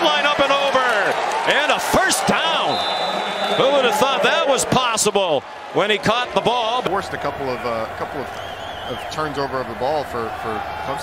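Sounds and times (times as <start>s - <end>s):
stadium crowd noise: 0.0s - 11.0s
man talking: 3.6s - 8.3s, 8.9s - 11.0s.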